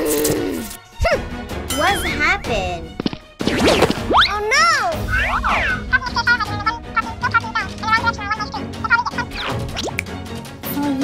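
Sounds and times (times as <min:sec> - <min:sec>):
light background music: 0:00.0 - 0:11.0
cartoon swish: 0:05.0 - 0:05.9.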